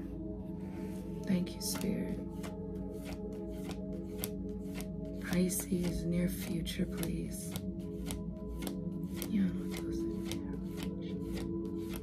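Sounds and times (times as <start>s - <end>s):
background music: 0.0s - 12.0s
cards shuffled by hand: 1.6s - 12.0s.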